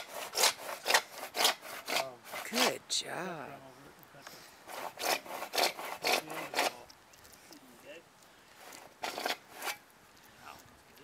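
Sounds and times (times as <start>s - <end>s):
hand saw cutting plastic pipe: 0.0s - 2.7s, 4.7s - 6.8s, 8.6s - 9.8s.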